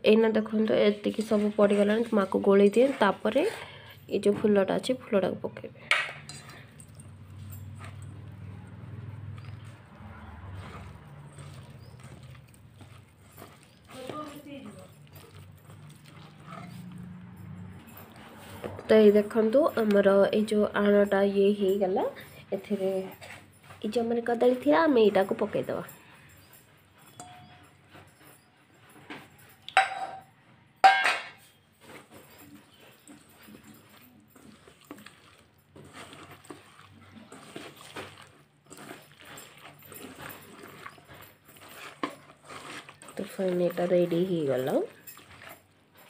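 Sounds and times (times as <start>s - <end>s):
hands squelching batter: 0.2s - 5.0s, 5.8s - 25.9s, 31.8s - 46.0s.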